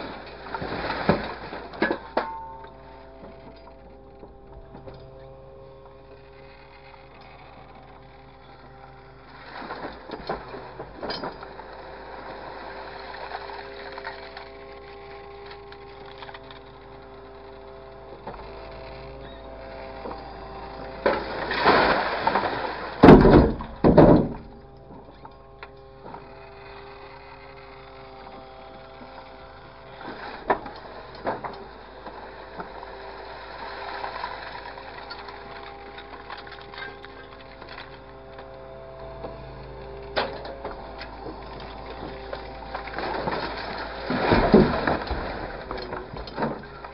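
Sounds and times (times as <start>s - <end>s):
grapple machine engine humming: 0.0s - 46.9s.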